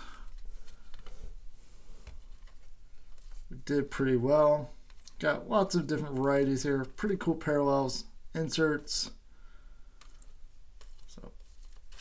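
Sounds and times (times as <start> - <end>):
cards being flipped through: 0.2 - 3.5, 10.0 - 12.0.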